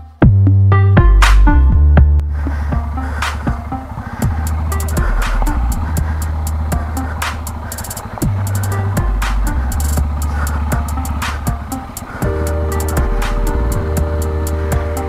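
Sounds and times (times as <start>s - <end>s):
electronic music with deep bass: 0.0s - 15.0s
falling swoop: 1.2s - 15.0s.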